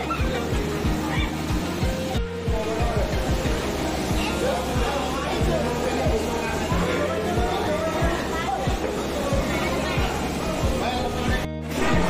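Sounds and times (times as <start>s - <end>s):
music with steady bass beat: 0.0s - 12.0s.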